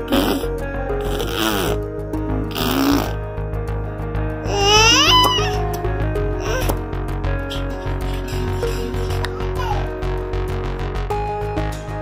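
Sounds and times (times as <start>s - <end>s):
background music: 0.0s - 12.0s
baby making rasping sounds: 4.4s - 5.7s, 6.4s - 6.8s, 7.4s - 10.0s.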